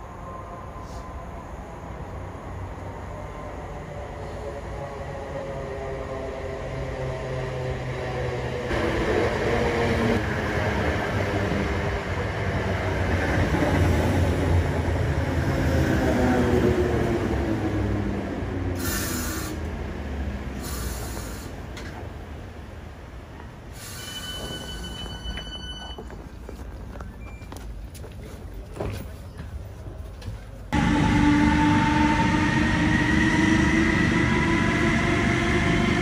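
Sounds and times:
electric train braking: 0:23.7 - 0:26.0, 0:30.8 - 0:36.0
train motor whine: 0:30.8 - 0:36.0.

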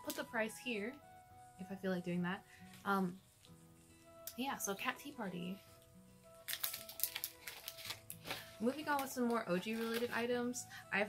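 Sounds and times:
quiet background music: 0:00.0 - 0:11.0
plastic bag crinkling: 0:06.4 - 0:10.3.

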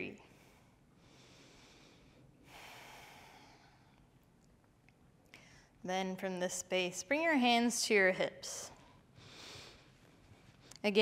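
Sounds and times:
person breathing: 0:00.3 - 0:04.1, 0:09.2 - 0:10.7.

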